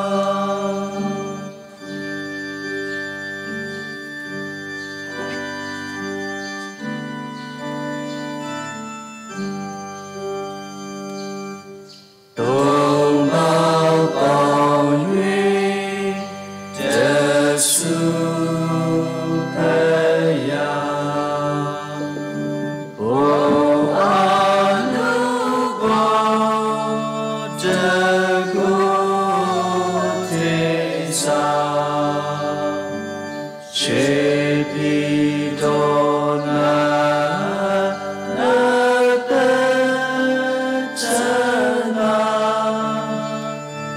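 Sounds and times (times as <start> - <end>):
person chanting a prayer: 0.0 - 1.4, 12.4 - 43.6
voices singing a hymn: 0.0 - 2.2, 12.4 - 43.9
church organ chord: 0.0 - 43.9.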